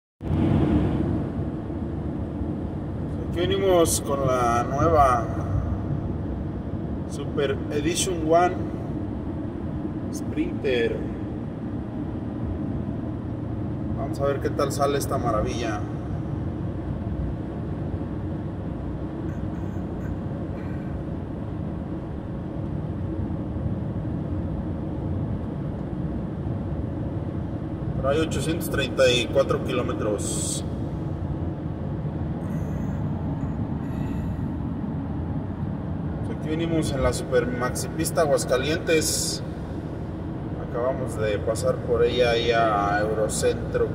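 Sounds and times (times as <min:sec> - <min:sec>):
van road and engine noise: 0:00.2 - 0:43.9.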